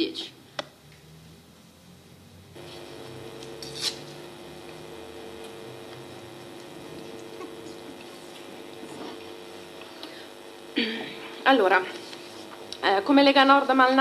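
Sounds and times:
two-note electrical hum: 0.9s - 14.0s.

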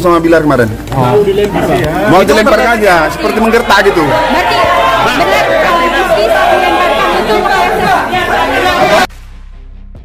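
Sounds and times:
voices talking over one another: 0.4s - 9.1s.

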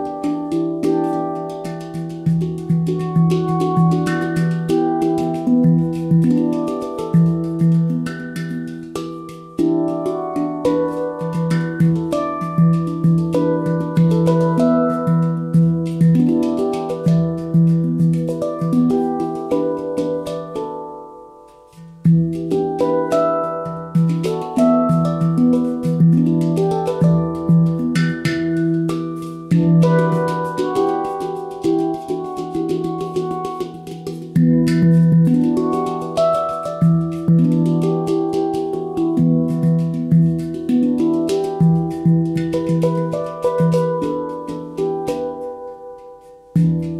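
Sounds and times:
handpan notes ringing: 0.0s - 46.9s.

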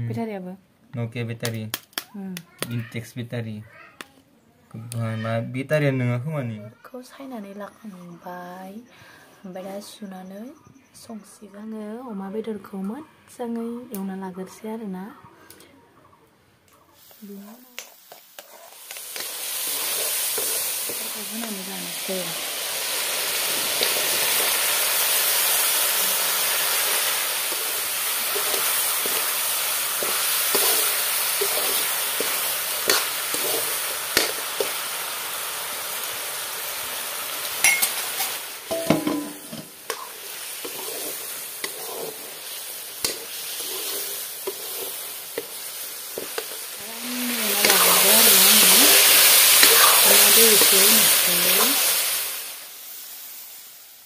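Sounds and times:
food sizzling in a wok: 16.9s - 54.0s
spatula scraping pan: 17.8s - 21.7s, 26.2s - 34.8s, 37.7s - 51.6s.

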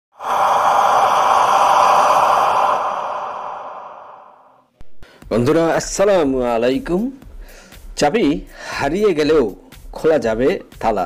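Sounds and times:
breathy whoosh: 0.1s - 5.2s.

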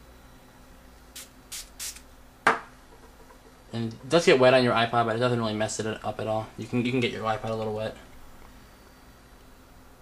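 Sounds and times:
pump spray bottle spritzing: 1.2s - 2.0s.

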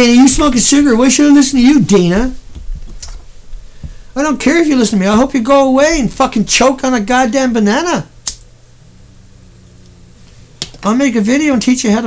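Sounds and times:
person speaking: 0.0s - 2.5s, 3.9s - 8.2s, 8.8s - 12.0s
low room hum: 0.0s - 12.0s
sharp click: 8.2s - 8.5s.

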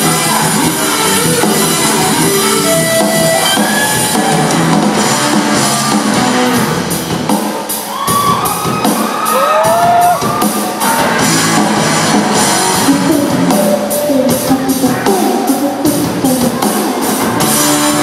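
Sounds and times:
rock band playing: 0.0s - 18.0s.

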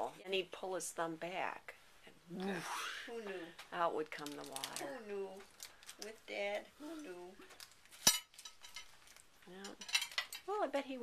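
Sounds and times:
soft voices: 2.2s - 7.5s
cutlery clinking on tableware: 8.0s - 10.5s.

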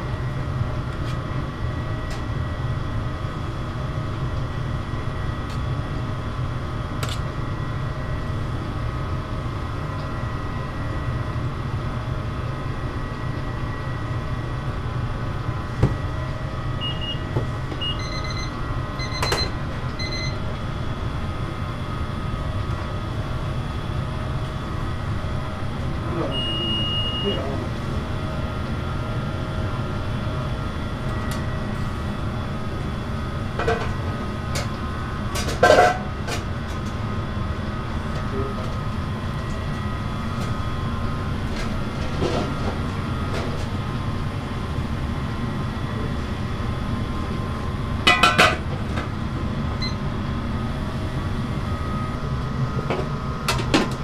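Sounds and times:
kitchen equipment rumble and hum: 0.0s - 54.0s
short electronic beeps: 26.3s - 27.4s.

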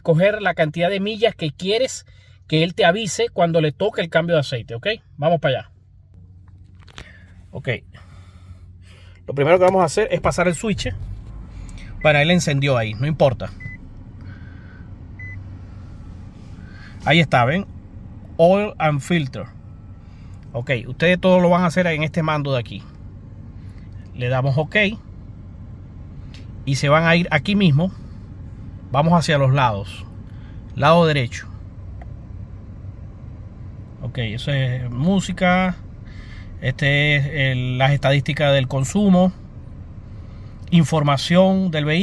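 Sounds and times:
car engine idling: 0.0s - 42.0s
steady low hum: 0.0s - 42.0s
short high beep: 13.5s - 13.9s, 15.2s - 15.4s.

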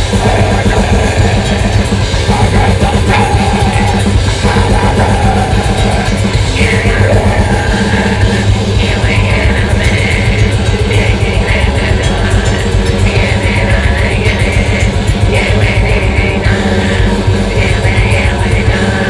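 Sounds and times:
grindcore band playing live: 0.0s - 19.0s
screamed vocals: 0.0s - 19.0s.

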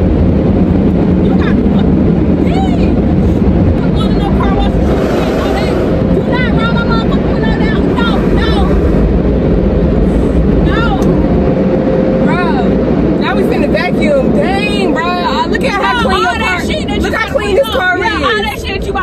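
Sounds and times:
car wash machinery rumbling: 0.0s - 19.0s
woman laughing and calling out: 1.2s - 3.0s, 15.1s - 19.0s.

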